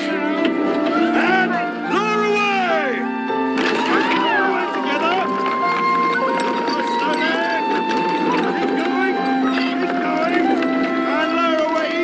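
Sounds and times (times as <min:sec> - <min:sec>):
crowd voices crying out: 0:00.0 - 0:12.0
orchestral music with held notes: 0:00.0 - 0:12.0.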